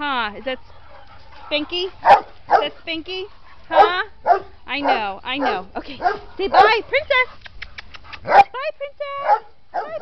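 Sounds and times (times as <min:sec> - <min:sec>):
dogs barking: 0:00.6 - 0:02.8, 0:03.6 - 0:07.3, 0:08.2 - 0:08.5, 0:09.2 - 0:10.0.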